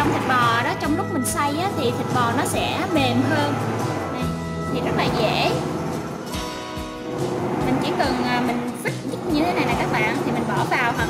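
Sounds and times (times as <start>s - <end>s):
background music with held chords: 0.0s - 11.0s.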